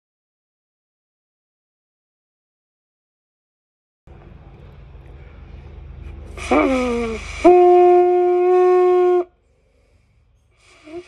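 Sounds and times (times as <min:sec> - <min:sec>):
low outdoor rumble: 0:04.1 - 0:11.0.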